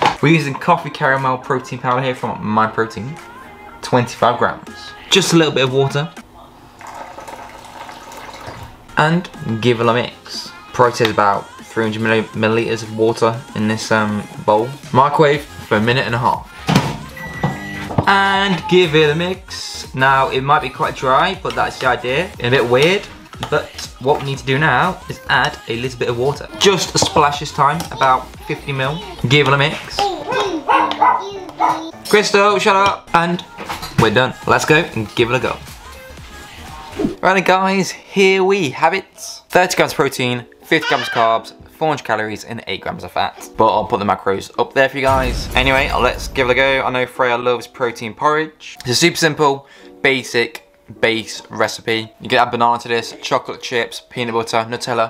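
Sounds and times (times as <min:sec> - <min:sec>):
dog barking: 0:30.3 - 0:31.9
dog whining: 0:30.3 - 0:32.0.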